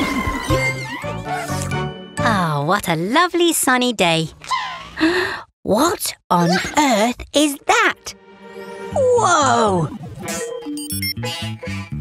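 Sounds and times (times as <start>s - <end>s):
cartoon background music: 0.0s - 2.7s, 7.4s - 12.0s.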